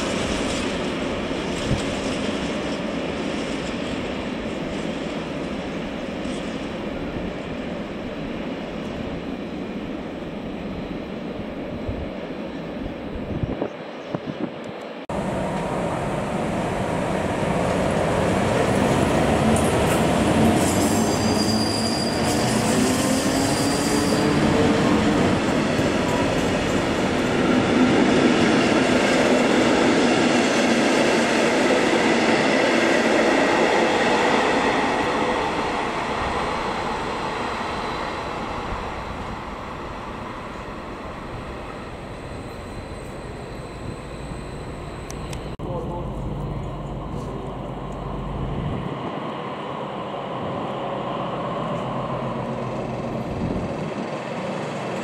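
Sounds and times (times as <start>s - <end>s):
distant train rumble: 0.0s - 55.0s
train wheels rolling over rails: 16.5s - 45.5s
high wheel squeal: 20.6s - 24.8s.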